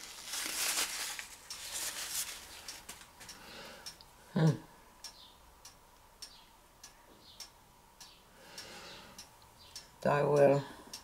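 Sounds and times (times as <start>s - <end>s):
soft rustling: 0.0s - 3.4s
faint regular ticking: 1.4s - 4.3s, 5.0s - 11.0s.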